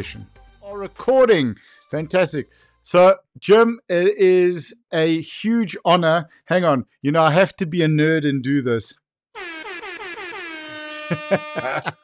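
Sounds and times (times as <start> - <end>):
air horn blast: 9.4 - 11.9.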